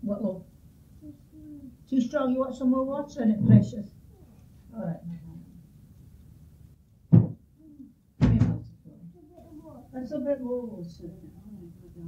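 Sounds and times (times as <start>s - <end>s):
loud thud: 7.1s - 7.4s, 8.2s - 8.7s
quick double knock: 7.1s - 7.4s.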